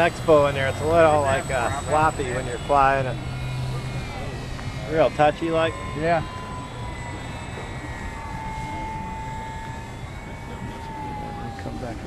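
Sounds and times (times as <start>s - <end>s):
model plane motor whining: 0.0s - 12.0s.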